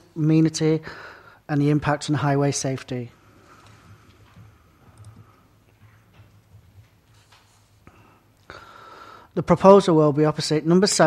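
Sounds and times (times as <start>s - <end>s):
computer mouse clicks: 3.6s - 5.3s.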